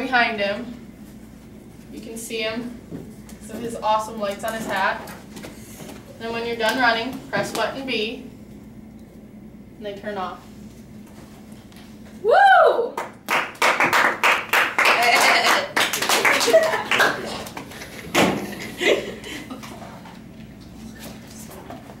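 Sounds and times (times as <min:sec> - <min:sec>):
person whooping: 0:12.2 - 0:13.1
small group clapping: 0:12.9 - 0:18.0.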